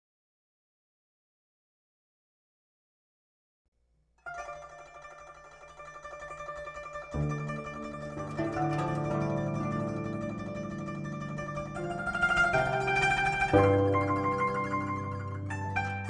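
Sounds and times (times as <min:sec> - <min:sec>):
plucked zither playing: 0:04.3 - 0:16.0.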